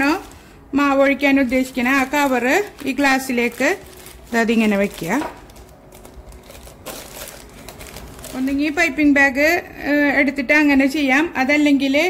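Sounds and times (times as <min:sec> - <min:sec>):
woman speaking: 0:00.0 - 0:05.4, 0:08.3 - 0:12.0
plastic bag crinkling: 0:00.0 - 0:09.0.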